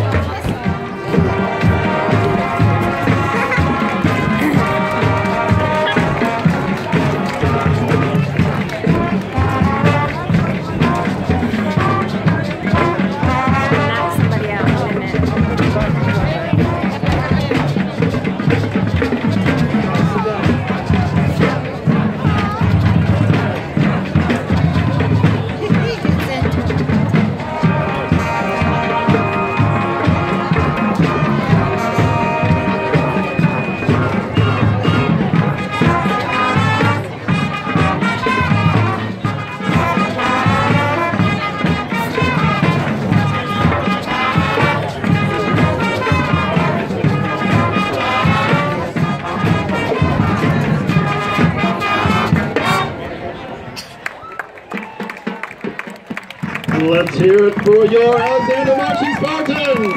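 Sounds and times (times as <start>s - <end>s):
marching band brass and drums: 0.0s - 59.9s
spectators talking: 0.0s - 59.9s.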